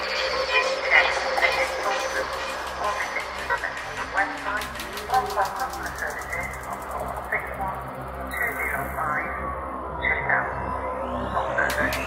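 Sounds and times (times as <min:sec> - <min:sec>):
psychedelic ambient electronic music: 0:00.0 - 0:12.0
fast faint ticking: 0:01.3 - 0:07.9.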